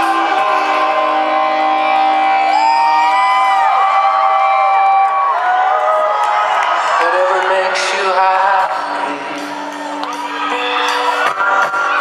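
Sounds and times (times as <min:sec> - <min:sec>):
live rock band playing: 0:00.0 - 0:04.9, 0:07.8 - 0:12.0
crowd cheering: 0:00.0 - 0:12.0.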